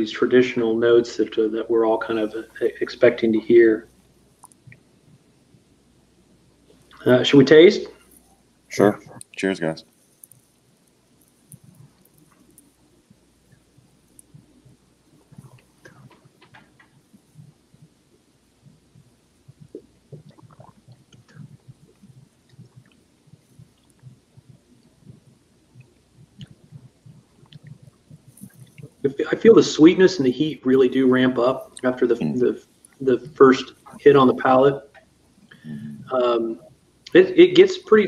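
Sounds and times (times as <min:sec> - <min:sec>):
lip smacks and tongue clicks: 0:10.2 - 0:29.0.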